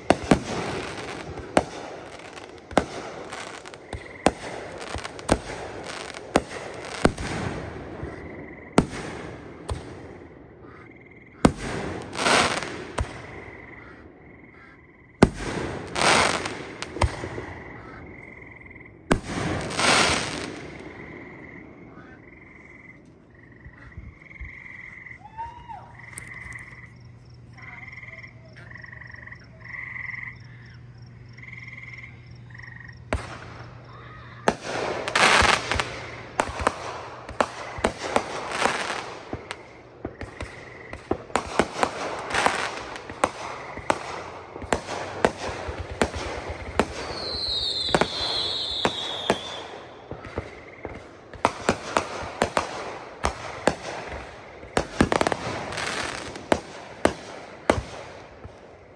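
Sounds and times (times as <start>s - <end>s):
fireworks crackling: 0.0s - 10.2s, 11.4s - 13.4s, 15.2s - 18.0s, 19.1s - 21.1s, 33.1s - 58.9s
fireworks bangs: 0.0s - 10.8s, 11.4s - 13.9s, 15.2s - 18.2s, 19.1s - 22.2s, 33.0s - 58.9s.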